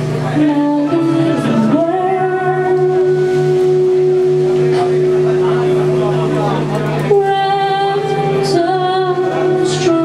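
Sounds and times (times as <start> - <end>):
live band accompaniment: 0.0 - 10.0
woman singing: 0.2 - 4.0, 7.0 - 10.0.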